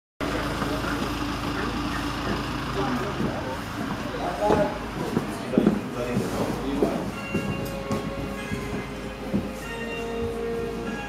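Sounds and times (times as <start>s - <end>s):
fire engine idling hum: 0.2s - 11.0s.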